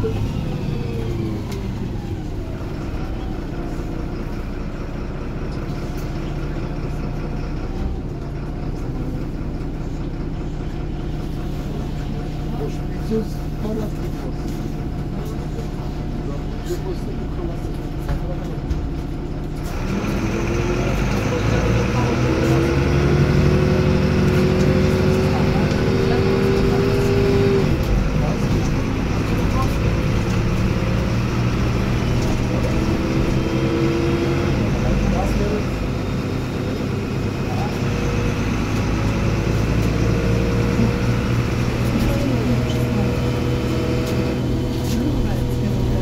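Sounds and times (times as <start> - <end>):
bus engine accelerating: 0.0 - 46.0.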